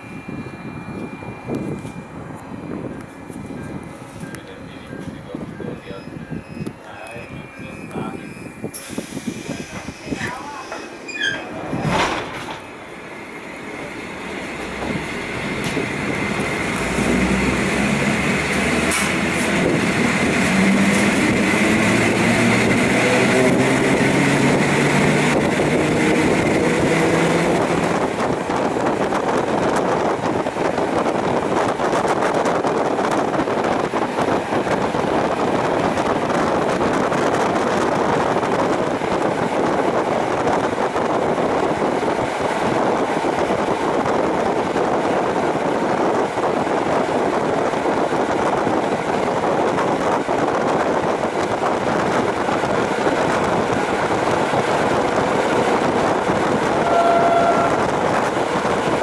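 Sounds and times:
electric train motors humming: 0.0s - 59.0s
train running at speed: 0.0s - 59.0s.

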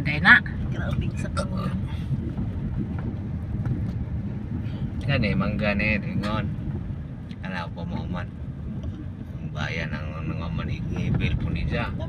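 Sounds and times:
car driving rumble: 0.0s - 12.0s.

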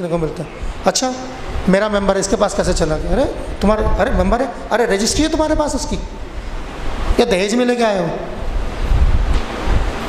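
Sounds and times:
wind buffeting microphone: 1.4s - 7.4s, 8.3s - 10.0s.

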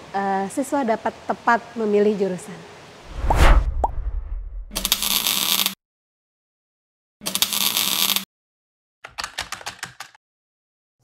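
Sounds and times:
low whoosh: 3.1s - 5.0s.

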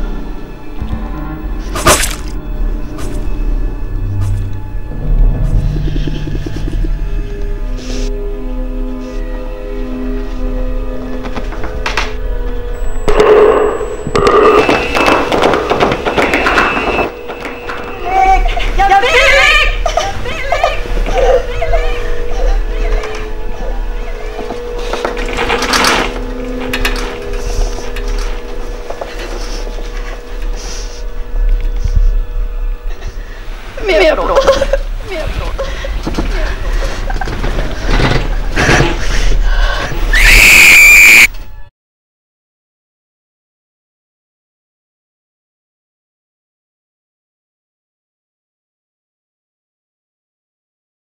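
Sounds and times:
electric bell ringing: 12.6s - 18.8s
woman crying and moaning: 18.1s - 24.6s, 33.8s - 37.3s
woman screaming: 40.1s - 41.3s.

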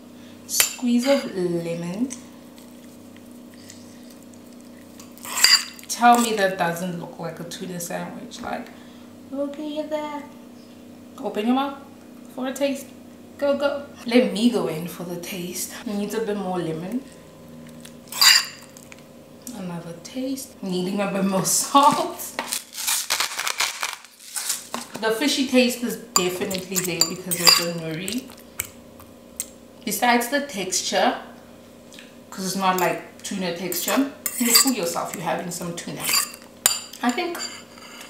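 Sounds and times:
low steady hum: 0.0s - 22.7s, 24.3s - 38.0s
metal fork scraping a bowl: 5.1s - 6.4s, 18.1s - 18.7s, 26.2s - 27.8s, 33.7s - 35.2s, 36.0s - 38.0s.

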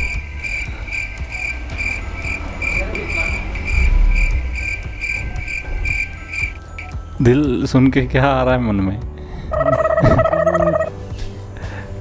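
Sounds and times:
cricket chirping: 0.0s - 7.1s
low rumble: 0.0s - 7.2s.

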